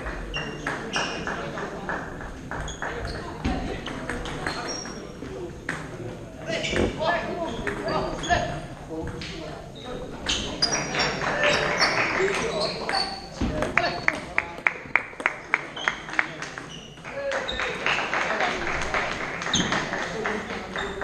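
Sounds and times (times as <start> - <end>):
background chatter of voices: 0.0 - 21.0.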